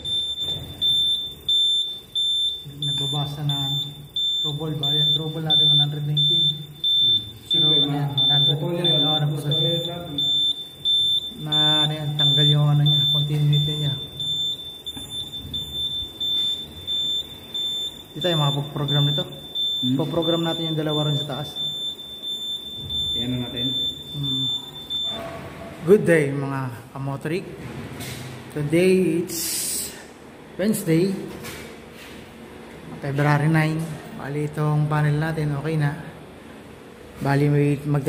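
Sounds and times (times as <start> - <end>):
high-pitched alarm beeping: 0.0 - 25.5
voices talking: 2.2 - 14.7, 15.6 - 22.4, 23.0 - 26.0.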